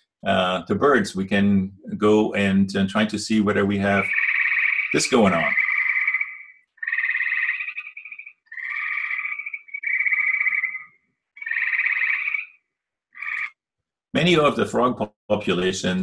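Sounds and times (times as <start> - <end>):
treefrog trilling: 3.8 - 13.6.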